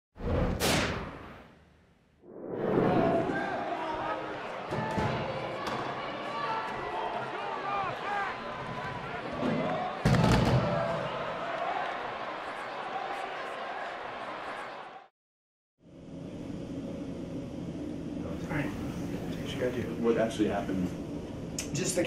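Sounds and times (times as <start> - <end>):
people shouting: 2.8 - 15.1.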